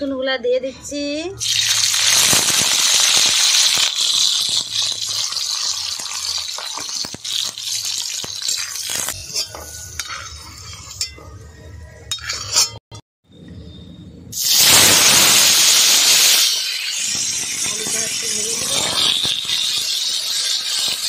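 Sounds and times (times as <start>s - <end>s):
garlic sizzling in hot oil: 1.4s - 11.0s, 14.4s - 21.0s
metal spatula scraping wok: 3.7s - 12.8s, 16.1s - 21.0s.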